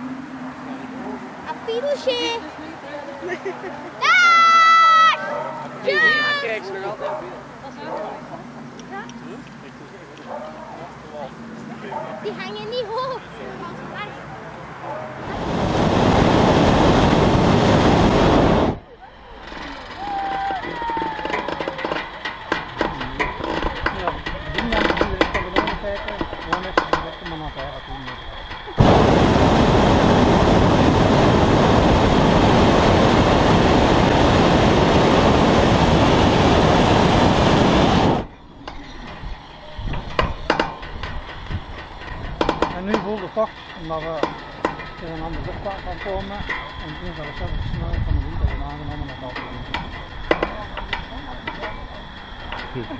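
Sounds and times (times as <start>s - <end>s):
voices: 0.6s - 16.3s, 18.7s - 32.4s, 33.4s - 52.9s
propane burner blasts: 15.1s - 18.8s, 19.9s - 52.9s.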